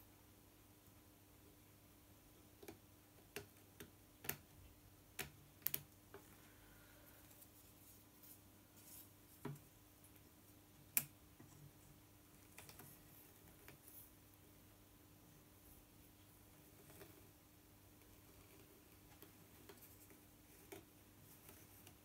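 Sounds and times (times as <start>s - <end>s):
faint steady hum: 0.0s - 22.0s.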